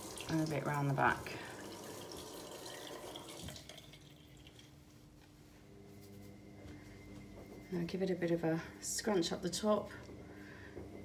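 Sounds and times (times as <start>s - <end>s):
water dripping: 0.0s - 4.8s
water running in sink: 0.0s - 4.8s.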